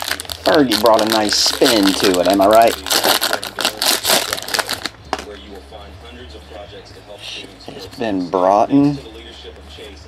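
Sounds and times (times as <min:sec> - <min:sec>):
foil wrapper crinkling: 0:00.0 - 0:05.4.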